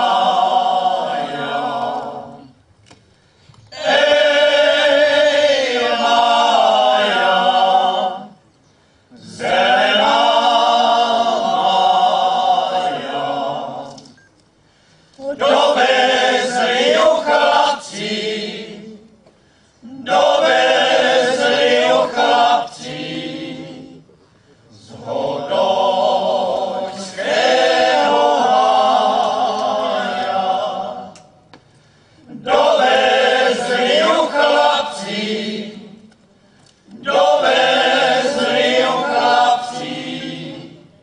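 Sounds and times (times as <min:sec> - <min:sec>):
men's choir singing a cappella: 0:00.0 - 0:02.6, 0:03.7 - 0:08.4, 0:09.1 - 0:14.3, 0:15.2 - 0:19.2, 0:19.8 - 0:31.4, 0:32.2 - 0:36.2, 0:36.9 - 0:41.0.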